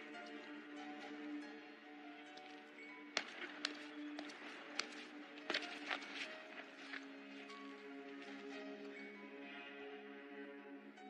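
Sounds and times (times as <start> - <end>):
soft background music: 0.0 - 11.0
footsteps on stone steps: 2.3 - 8.7.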